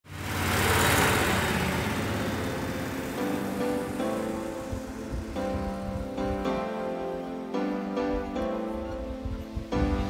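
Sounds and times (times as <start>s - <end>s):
heavy truck engine running: 0.0s - 6.4s.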